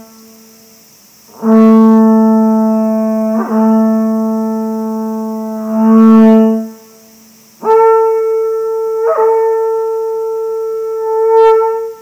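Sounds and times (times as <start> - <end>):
conch shell trumpet note: 1.3 - 12.0.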